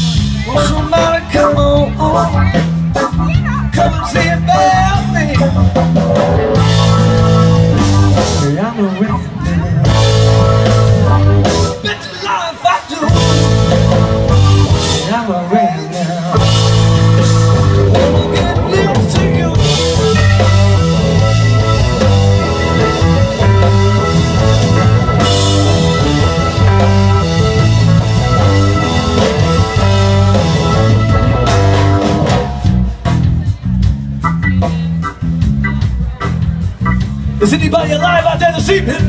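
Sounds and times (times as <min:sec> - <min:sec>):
bass guitar: 0:00.0 - 0:39.0
drum kit: 0:00.0 - 0:39.0
electric guitar: 0:00.0 - 0:39.0.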